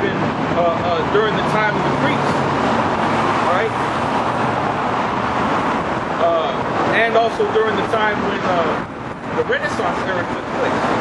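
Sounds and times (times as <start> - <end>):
road traffic rushing: 0.0 - 11.0.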